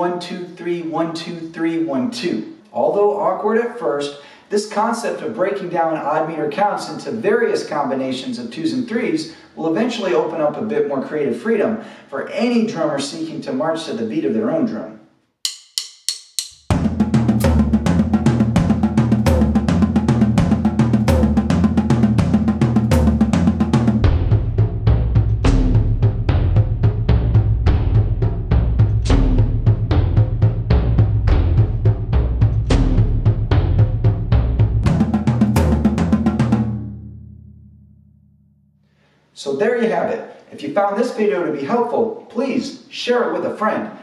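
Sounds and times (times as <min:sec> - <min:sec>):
drum kit groove: 0:15.4 - 0:37.0.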